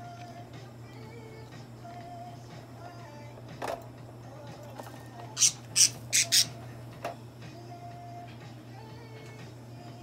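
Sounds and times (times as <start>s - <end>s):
budgerigar squawks: 5.4s - 6.6s.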